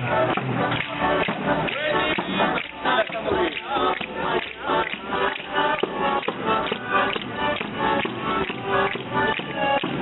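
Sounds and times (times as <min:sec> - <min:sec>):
folk melody: 0:00.0 - 0:10.0.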